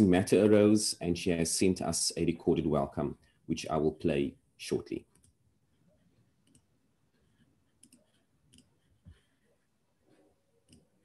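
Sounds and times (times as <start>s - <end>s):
computer mouse clicks: 6.4s - 6.7s, 7.8s - 8.7s.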